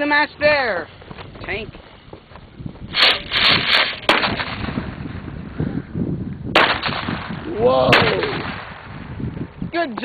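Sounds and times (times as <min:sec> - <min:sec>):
crackling pops: 0:02.9 - 0:05.0, 0:06.4 - 0:09.1
firework hissing: 0:02.9 - 0:05.0
sharp bang: 0:02.9 - 0:05.0, 0:06.5 - 0:09.0
firework rocket burst: 0:02.9 - 0:05.3, 0:06.5 - 0:09.1.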